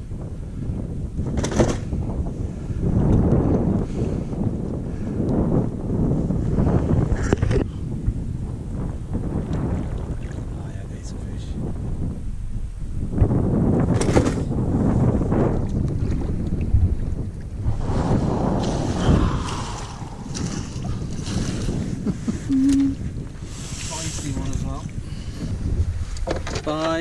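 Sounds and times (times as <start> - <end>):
wind on microphone: 0.0 - 27.0
water sloshing: 18.6 - 23.0
knocks against boat: 26.2 - 27.0.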